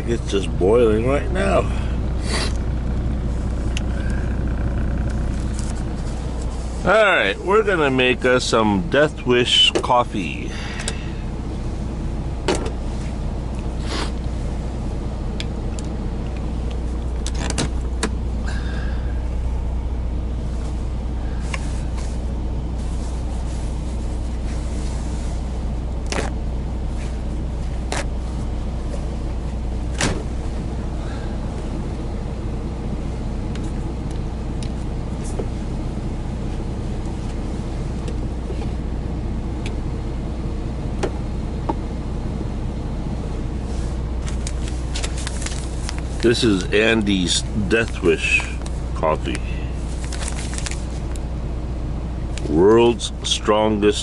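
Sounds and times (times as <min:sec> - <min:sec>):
diesel engine idling: 0:00.0 - 0:54.0.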